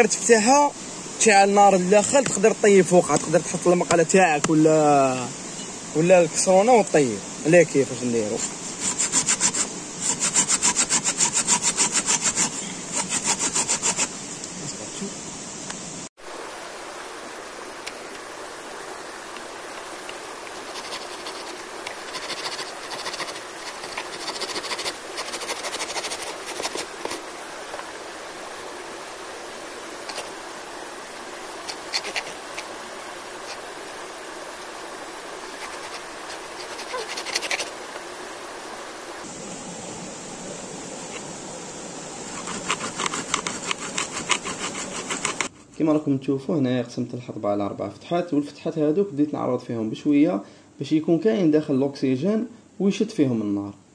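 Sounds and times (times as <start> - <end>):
hand saw cutting wooden log: 8.4 - 14.1, 20.4 - 27.3, 30.0 - 30.4, 31.6 - 32.8, 35.4 - 37.8, 42.3 - 45.6.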